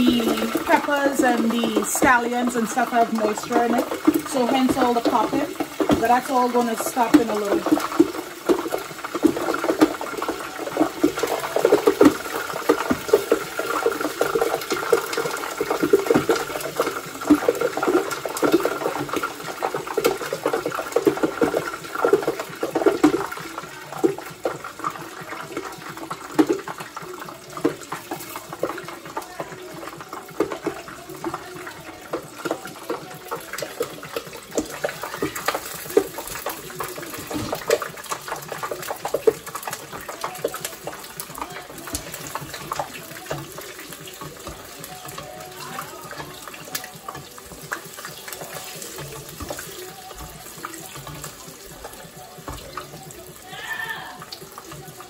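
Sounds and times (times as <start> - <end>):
hot oil sizzling and popping: 0.0 - 55.0.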